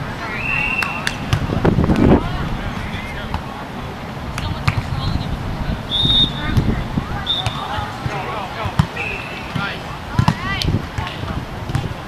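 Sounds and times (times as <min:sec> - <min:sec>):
players calling out: 0:00.0 - 0:12.0
hand slapping volleyball: 0:00.7 - 0:02.1, 0:04.3 - 0:04.9, 0:07.4 - 0:11.9.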